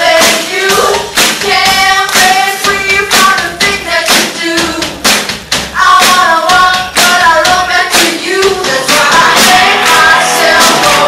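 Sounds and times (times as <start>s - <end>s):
woman singing lead: 0.0s - 5.0s, 5.7s - 11.0s
drum kit with cymbals: 0.0s - 11.0s
bass guitar: 8.8s - 11.0s
electric guitars: 9.2s - 11.0s.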